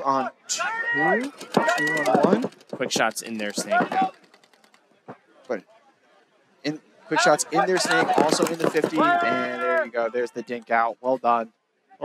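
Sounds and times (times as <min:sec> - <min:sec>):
male commentator speaking: 0:00.0 - 0:04.2, 0:06.6 - 0:11.5.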